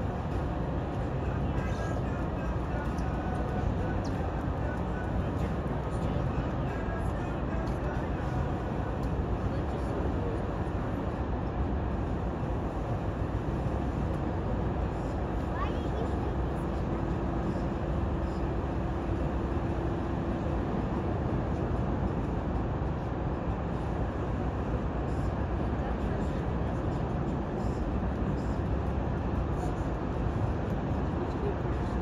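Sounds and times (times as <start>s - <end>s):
low harbour rumble: 0.0s - 32.0s.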